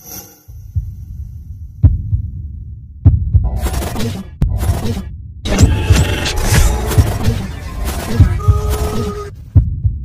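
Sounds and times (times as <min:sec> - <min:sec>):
heavy low thumps: 0:00.5 - 0:03.5, 0:09.5 - 0:10.0
glitchy static bursts: 0:05.5 - 0:09.3.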